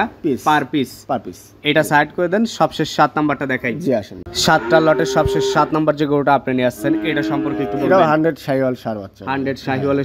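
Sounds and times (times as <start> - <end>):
calf mooing: 4.3 - 5.9, 6.7 - 8.2.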